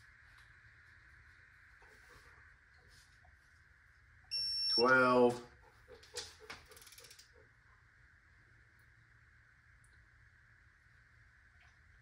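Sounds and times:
low steady hum: 0.0s - 12.0s
torque wrench ratchet clicks: 6.7s - 7.3s.

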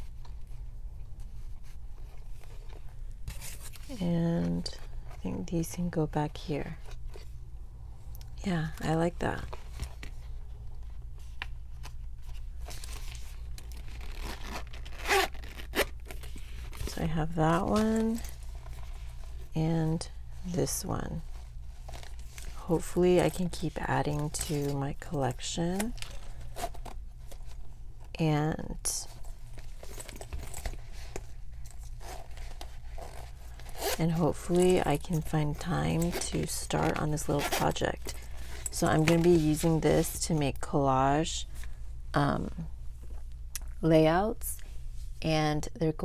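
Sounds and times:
wallet zipper being pulled: 13.0s - 17.0s, 29.5s - 39.8s.

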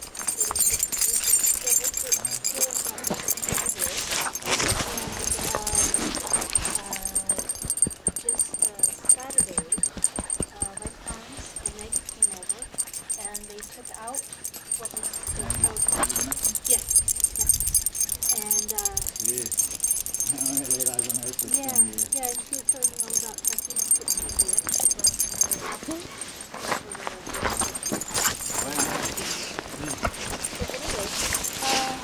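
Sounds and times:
dog rubbing against microphone: 0.0s - 32.0s.

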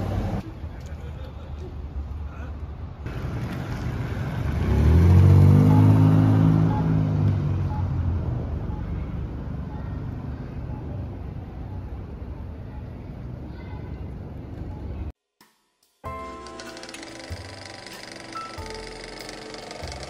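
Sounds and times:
low street rumble: 0.0s - 15.1s
car driving past: 3.1s - 8.2s.

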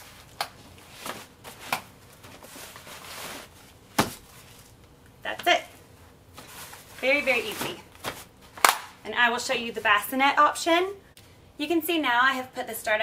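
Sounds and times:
fabric rustle: 0.8s - 4.8s.

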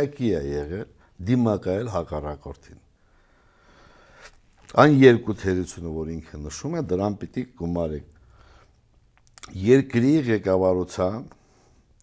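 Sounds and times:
man speaking: 0.0s - 2.9s, 4.6s - 8.2s, 9.4s - 11.4s.

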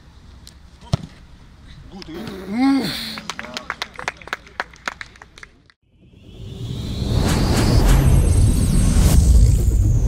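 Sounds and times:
scattered handclaps: 3.2s - 5.8s.

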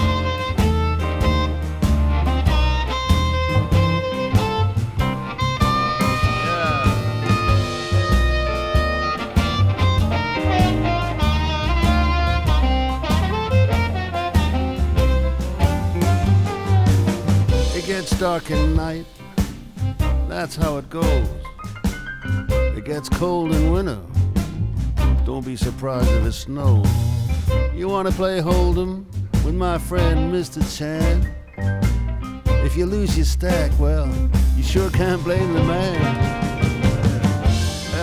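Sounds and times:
blues-rock band from vinyl record: 0.0s - 38.0s.

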